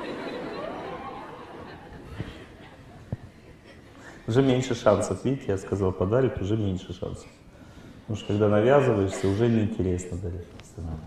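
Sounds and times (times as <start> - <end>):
audience chattering and laughing: 0.0 - 4.8.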